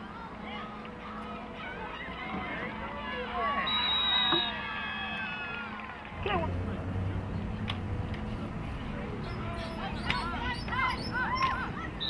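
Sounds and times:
low outdoor rumble: 0:04.5 - 0:12.0.

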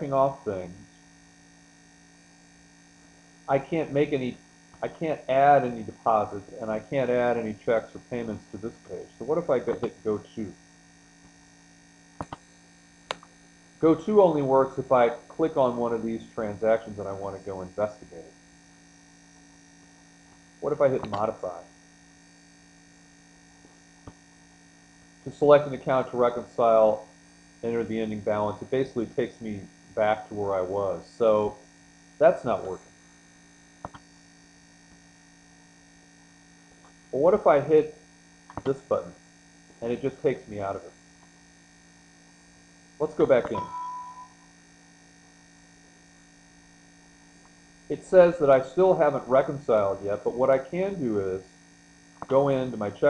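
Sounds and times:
faint mains hum: 0:00.0 - 0:53.0
person speaking: 0:03.5 - 0:10.5, 0:20.6 - 0:21.7, 0:32.2 - 0:32.8, 0:43.0 - 0:44.3.

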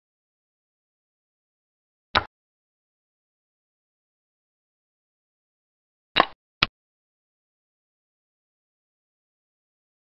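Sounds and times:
wooden clack sound effect: 0:06.2 - 0:06.8.

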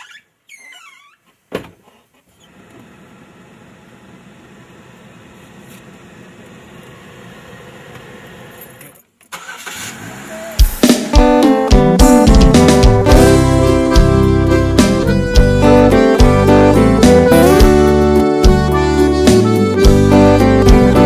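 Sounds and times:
car engine starting: 0:09.3 - 0:19.0
music: 0:10.6 - 0:21.0.

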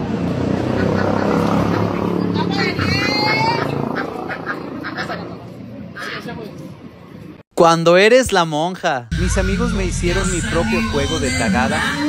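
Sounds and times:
busy sidewalk street noise: 0:00.0 - 0:07.4
duck quacking: 0:02.6 - 0:05.4
people talking: 0:07.8 - 0:12.0.

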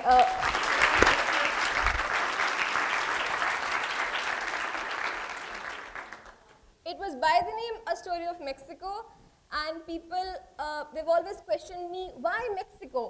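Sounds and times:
audience applauding: 0:00.0 - 0:06.5.

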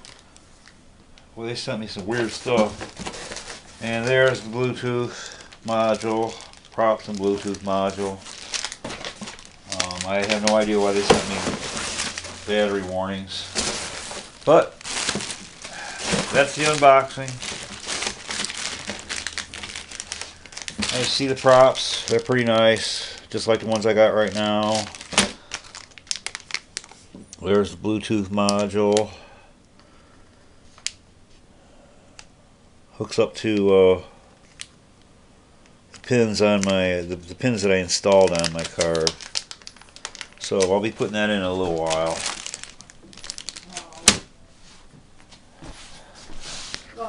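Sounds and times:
plastic bag crinkling: 0:00.0 - 0:00.6, 0:02.0 - 0:27.2, 0:36.0 - 0:44.2.

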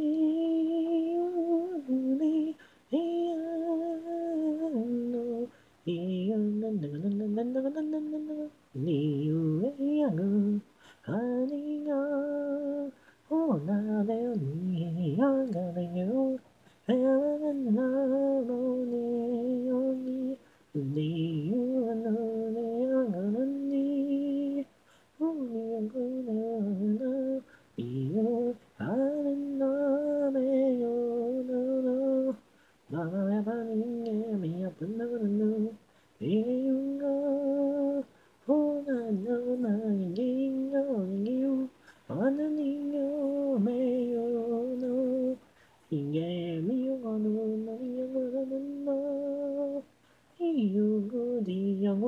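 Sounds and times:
woman singing unaccompanied: 0:00.0 - 0:52.0
singer breathing: 0:02.6 - 0:02.9, 0:10.7 - 0:11.1, 0:24.8 - 0:25.2, 0:41.8 - 0:42.1, 0:45.4 - 0:45.8.

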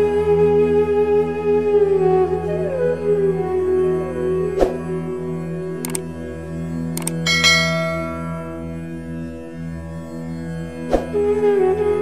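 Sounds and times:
droning background music: 0:00.0 - 0:12.0
bright bell chime: 0:07.3 - 0:08.6.

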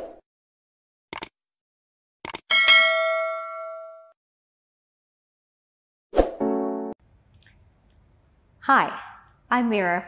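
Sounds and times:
short clicks: 0:01.1 - 0:01.3, 0:02.2 - 0:02.4
bright bell ding: 0:02.5 - 0:04.2.

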